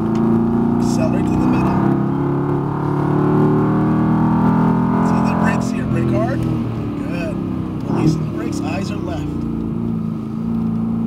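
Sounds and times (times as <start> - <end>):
car engine under throttle: 0.0 - 11.0.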